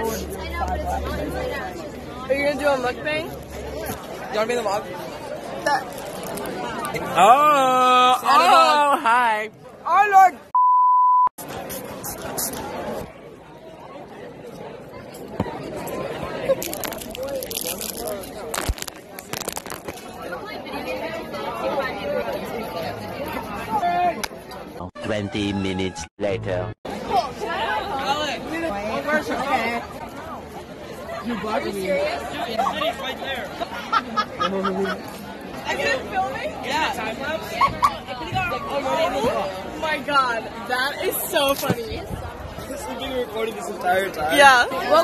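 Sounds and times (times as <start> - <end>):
crowd of teenagers talking: 0.0 - 10.6, 11.4 - 45.0.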